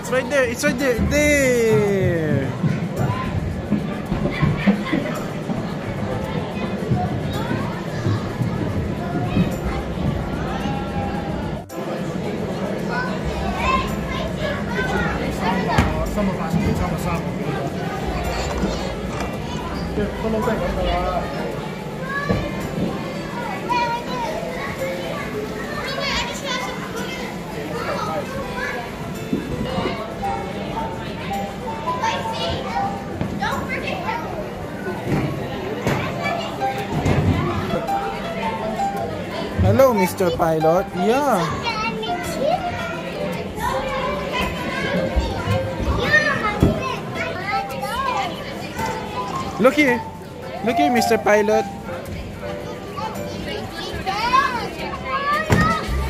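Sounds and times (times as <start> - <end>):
children chattering and calling out: 0.0 - 56.0.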